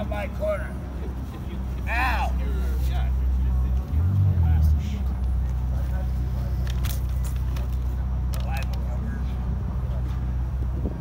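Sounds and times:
city traffic drone: 0.0s - 11.0s
engine hum: 0.0s - 11.0s.

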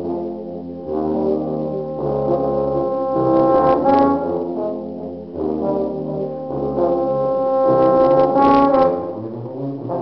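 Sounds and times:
low brass ensemble playing chords: 0.0s - 10.0s.

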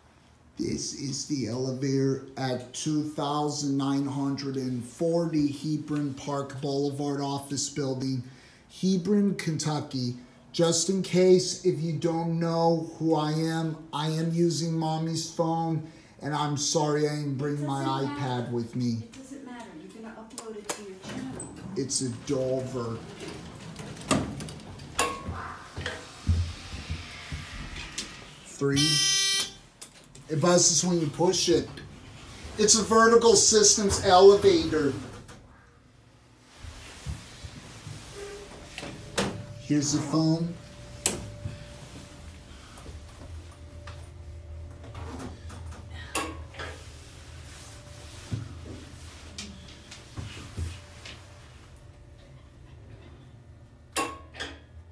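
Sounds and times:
elevator hum: 19.3s - 54.9s.

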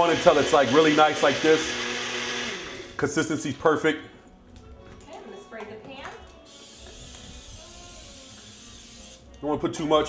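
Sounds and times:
aerosol spray hissing: 6.4s - 9.3s.

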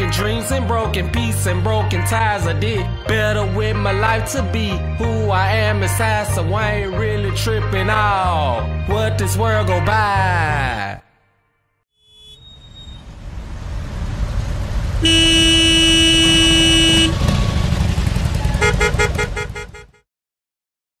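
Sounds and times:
bus and traffic rumble: 12.2s - 19.9s
vehicle horn: 15.0s - 20.0s.

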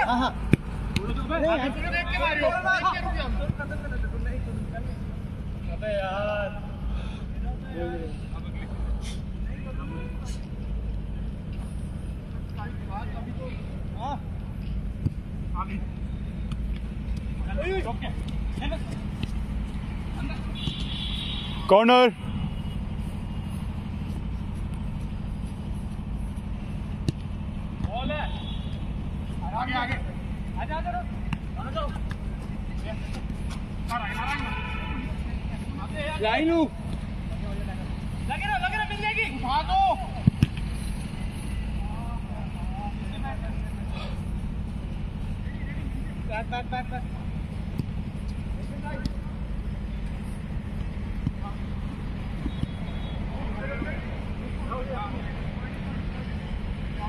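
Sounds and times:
steady low rumble: 8.2s - 34.2s
players shouting: 33.8s - 36.8s, 38.2s - 40.4s.

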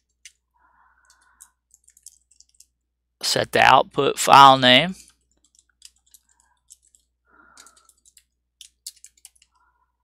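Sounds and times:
faint keyboard typing: 0.0s - 2.9s, 5.0s - 9.8s.

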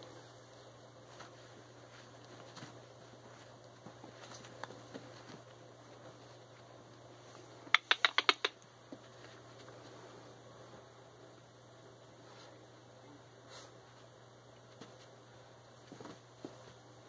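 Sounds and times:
sharp clicks: 7.8s - 8.6s.

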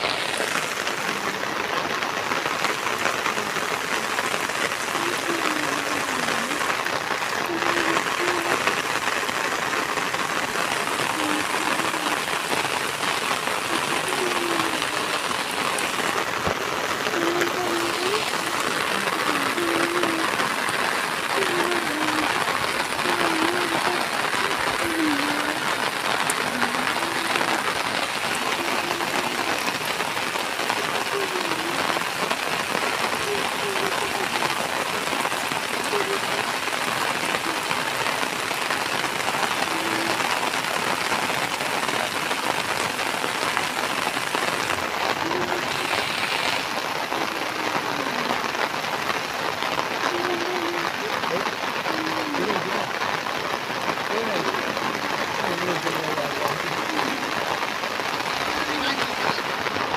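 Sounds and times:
heavy rain: 0.0s - 59.9s
raindrops pattering on umbrella: 0.0s - 59.9s.

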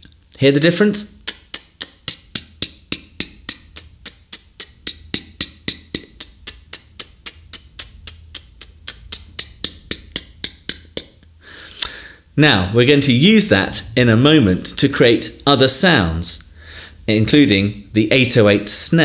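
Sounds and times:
beatboxed hi-hat clicks: 1.1s - 12.0s.

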